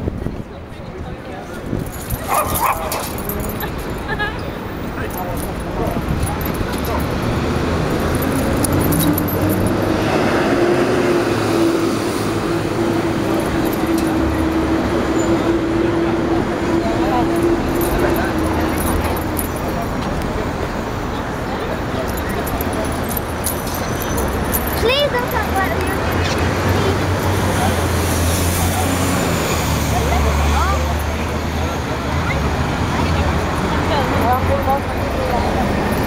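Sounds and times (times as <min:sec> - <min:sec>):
passing cars: 0:00.0 - 0:36.0
engine hum: 0:01.8 - 0:36.0.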